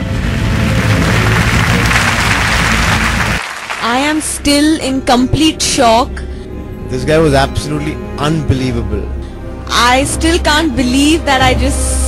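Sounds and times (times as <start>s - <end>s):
audience applauding: 0.0s - 4.3s
background music: 0.0s - 12.0s.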